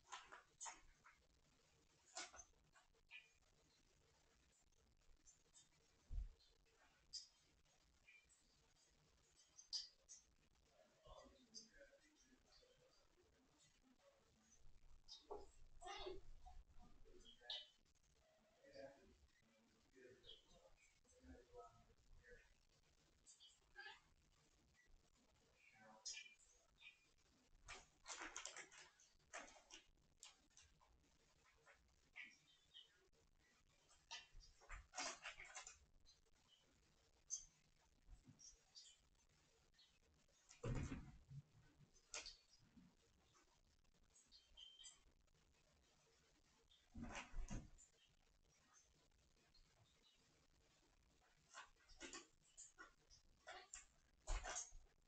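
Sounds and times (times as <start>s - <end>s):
kittens scratching and scuffling: 0.0s - 12.4s, 25.9s - 45.0s, 45.8s - 48.7s, 49.4s - 55.0s
kittens scuffing and tapping on floor: 40.5s - 42.4s, 46.9s - 47.9s, 51.4s - 54.9s.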